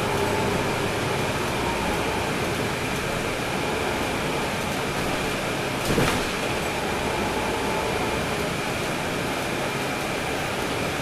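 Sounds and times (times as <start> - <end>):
bus interior engine noise: 0.0 - 11.0.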